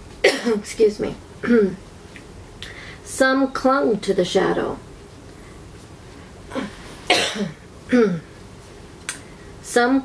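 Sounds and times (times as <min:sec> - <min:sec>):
woman coughing: 0:00.2 - 0:00.6, 0:06.5 - 0:08.3.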